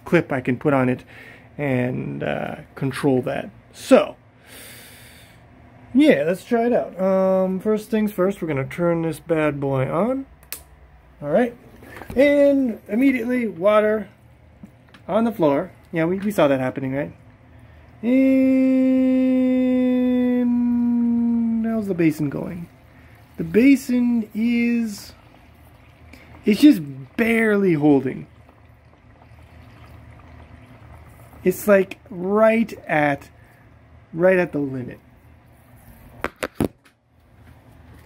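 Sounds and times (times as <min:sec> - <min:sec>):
man talking: 0:00.0 - 0:04.2, 0:05.9 - 0:10.3, 0:11.2 - 0:14.2, 0:15.0 - 0:17.2, 0:18.0 - 0:22.7, 0:23.4 - 0:25.2, 0:26.4 - 0:28.3, 0:31.4 - 0:33.3, 0:34.1 - 0:35.0.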